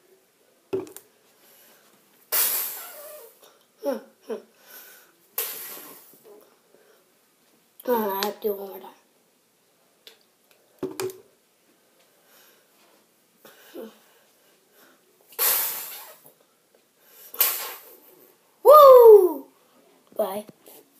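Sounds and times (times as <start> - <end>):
boy gasping: 13.5 - 14.1
boy saying ahh: 18.7 - 19.5.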